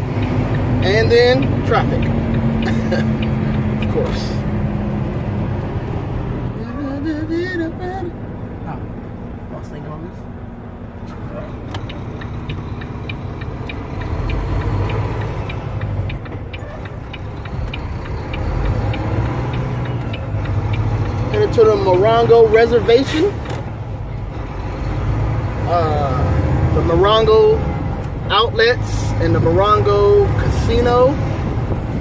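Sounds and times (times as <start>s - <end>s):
diesel engine and road noise: 0.0s - 32.0s
light regular ticking: 0.1s - 4.0s, 11.6s - 23.1s.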